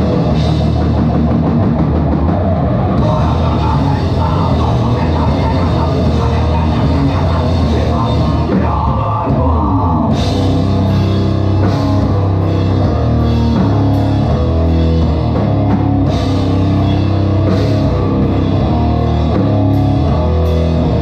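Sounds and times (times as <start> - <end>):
distorted electric guitars: 0.0 - 21.0
drum kit: 0.0 - 21.0.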